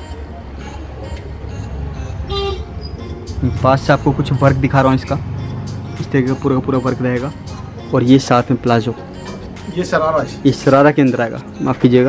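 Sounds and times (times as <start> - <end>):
road traffic rumble: 0.0 - 12.0
vehicle horn toot: 2.1 - 3.2.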